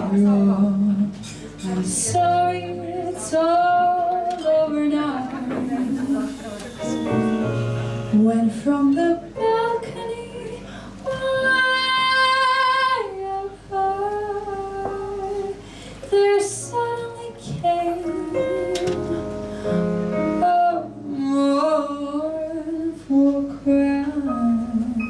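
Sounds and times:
small band with piano and bass: 0.0s - 25.0s
woman singing jazz: 0.0s - 25.0s.

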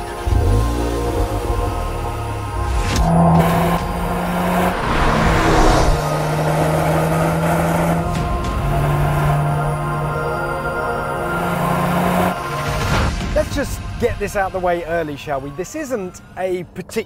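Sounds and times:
background music with low notes: 0.0s - 17.0s
car driving past: 1.1s - 9.8s.

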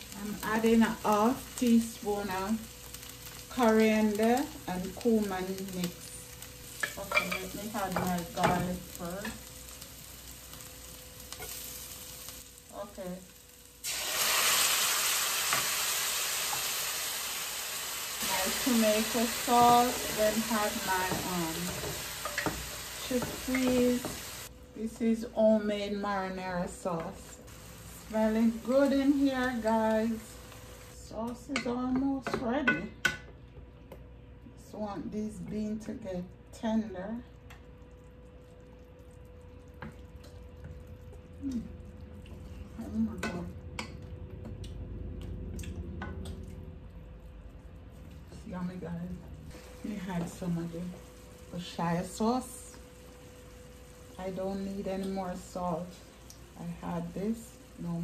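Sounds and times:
sauce sizzling in a frying pan: 0.0s - 24.6s, 25.2s - 31.2s, 37.8s - 42.9s, 49.4s - 58.0s.

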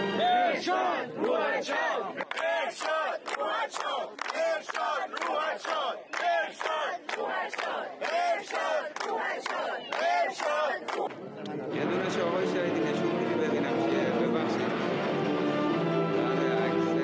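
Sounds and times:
crowd chanting: 0.0s - 12.5s
rhythmic hand clapping: 2.1s - 11.2s.

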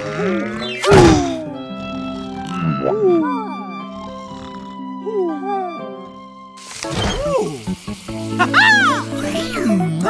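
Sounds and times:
cartoon background music: 0.0s - 10.0s.

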